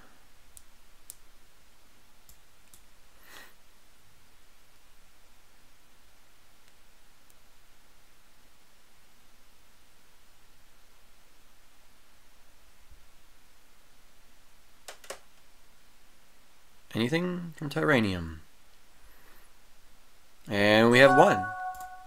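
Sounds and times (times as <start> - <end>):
faint steady hiss: 0.0 - 22.0.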